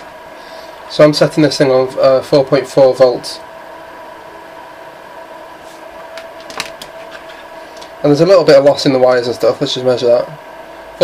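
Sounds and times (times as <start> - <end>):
electrical whine: 0.0 - 11.0.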